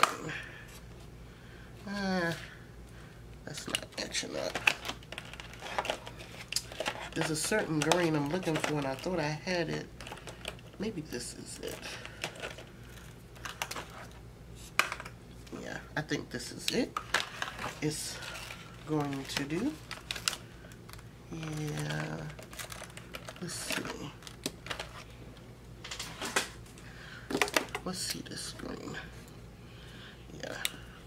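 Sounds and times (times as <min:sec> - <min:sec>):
papers rustling: 0:03.6 - 0:09.4, 0:17.0 - 0:25.2.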